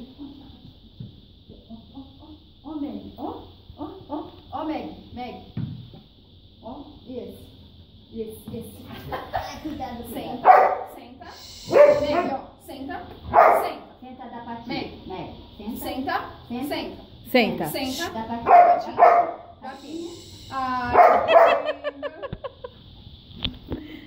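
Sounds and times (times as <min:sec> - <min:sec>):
people talking: 0:00.0 - 0:00.7, 0:08.1 - 0:22.4
dog barking: 0:10.4 - 0:11.0, 0:11.7 - 0:12.4, 0:13.3 - 0:13.8, 0:18.4 - 0:19.6, 0:20.9 - 0:21.9.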